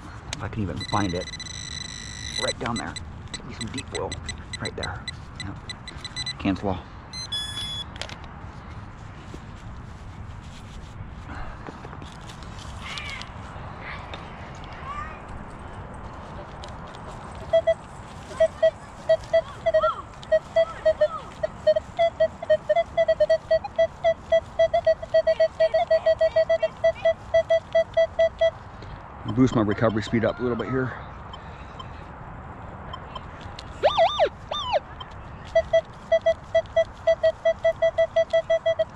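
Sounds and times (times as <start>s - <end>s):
metal detector beeps: 0.6s - 7.9s, 17.4s - 28.6s, 32.9s - 38.9s.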